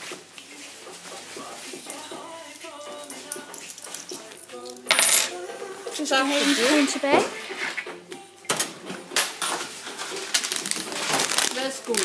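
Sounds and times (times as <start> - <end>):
coins clinking onto steel counter: 4.6 - 5.4.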